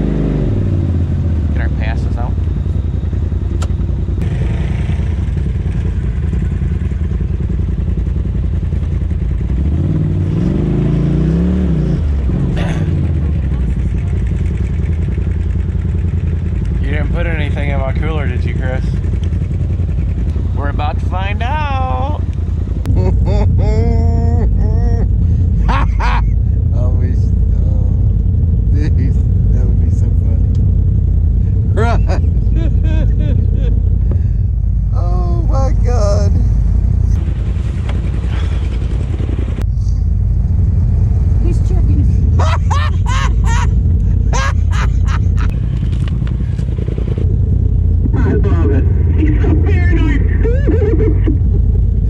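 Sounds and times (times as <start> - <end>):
engine idling low rumble: 0.0 - 52.0.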